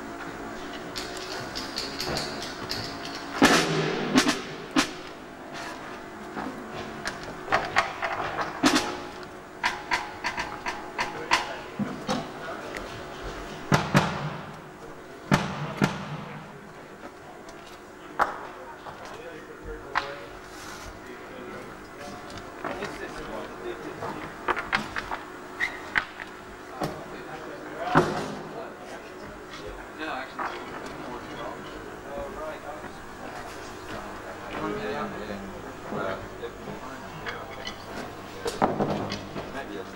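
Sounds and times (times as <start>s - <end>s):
drum kit hits: 3.3s - 5.2s, 15.3s - 16.4s.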